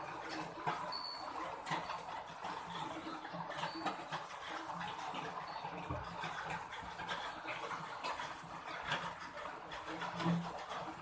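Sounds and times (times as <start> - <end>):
cat chewing and lapping: 0.0 - 11.0.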